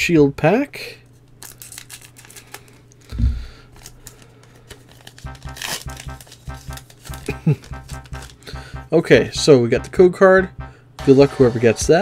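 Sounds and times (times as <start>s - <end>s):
foil pack rustling: 1.4s - 2.8s, 3.7s - 5.2s.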